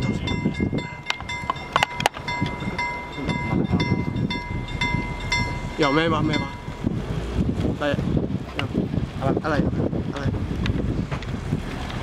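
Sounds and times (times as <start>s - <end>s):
level crossing warning bell: 0.0s - 6.9s
train carriages rumbling on rails: 0.0s - 9.0s.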